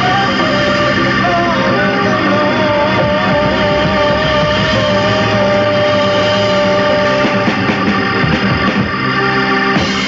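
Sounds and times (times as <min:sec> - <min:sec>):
jazz-rock band playing: 0:00.0 - 0:10.0.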